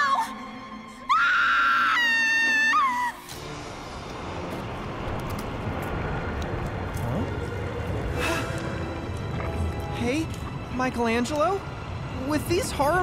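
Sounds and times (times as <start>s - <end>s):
low rumble: 3.4s - 13.0s.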